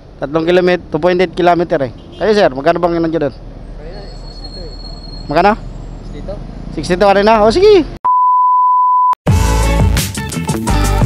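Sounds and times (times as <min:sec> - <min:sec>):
high test-tone beep: 0:08.1 - 0:09.2
electronic music with bass beat: 0:09.3 - 0:11.0.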